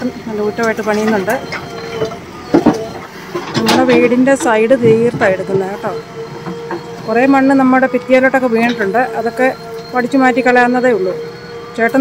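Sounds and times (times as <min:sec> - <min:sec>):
diesel engine running: 0:00.0 - 0:12.0.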